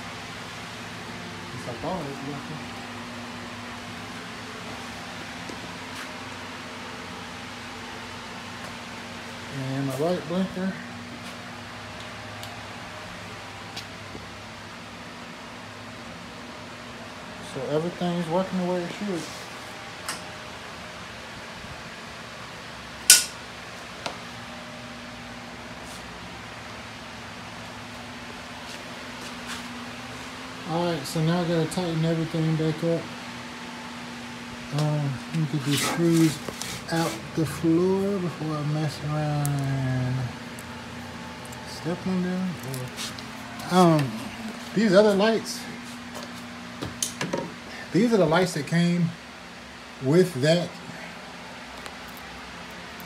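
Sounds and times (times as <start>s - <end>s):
machine hum: 0.0s - 53.0s.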